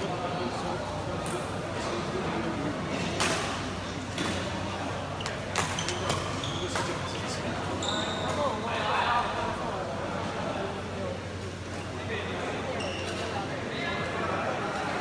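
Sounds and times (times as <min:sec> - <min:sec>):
shoes squeaking on gym floor: 0:05.2 - 0:08.5, 0:12.8 - 0:13.3.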